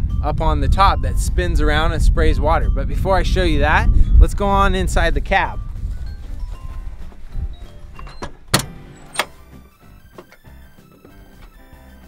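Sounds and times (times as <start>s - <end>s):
low wind rumble on microphone: 0.0s - 8.6s
soft background music: 0.0s - 12.0s.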